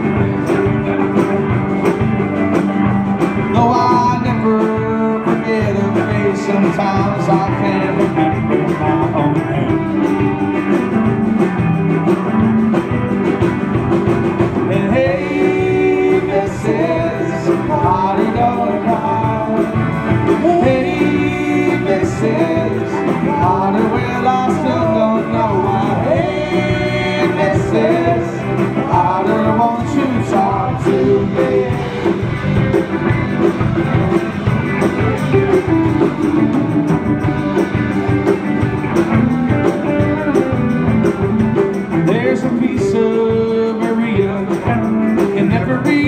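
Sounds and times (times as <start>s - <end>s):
lead melody line bending: 0.0s - 46.0s
live rock band playing: 0.0s - 46.0s.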